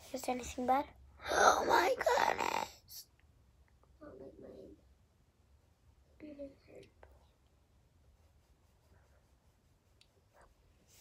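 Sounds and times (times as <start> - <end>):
girl's quiet wordless vocal sounds: 6.1 - 7.5.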